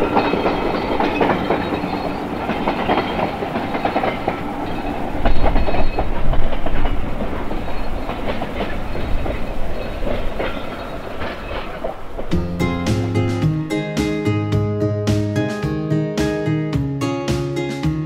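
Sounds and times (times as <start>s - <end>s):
train wheels clacking over rail joints: 0.0s - 13.4s.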